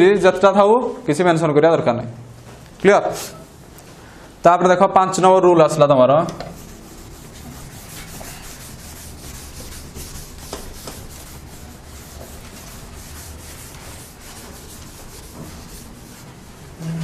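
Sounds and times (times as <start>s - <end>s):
duster rubbing chalkboard: 6.3s - 17.0s.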